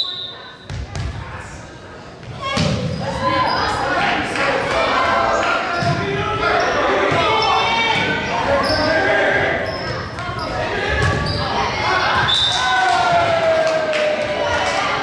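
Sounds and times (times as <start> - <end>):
voices echoing in a gym: 0.0 - 15.0.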